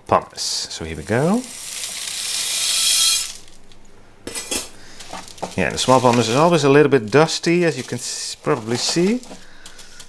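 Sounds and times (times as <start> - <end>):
grit pouring into plastic pot: 0.3 - 3.5, 4.8 - 10.0.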